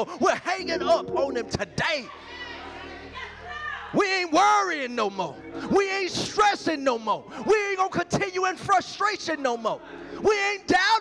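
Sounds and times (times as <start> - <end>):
low held musical chord: 0.2 - 3.2.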